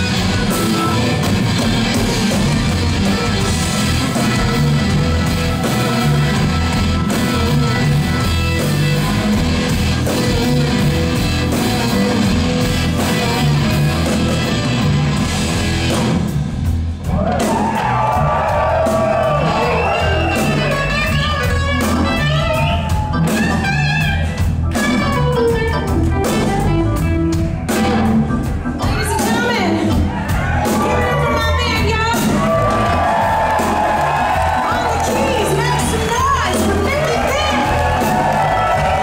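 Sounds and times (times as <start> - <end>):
electric guitar lead bending notes: 0.0 - 16.2, 19.6 - 29.9
blues-rock band playing: 0.0 - 39.0
drum kit with cymbals: 0.0 - 39.0.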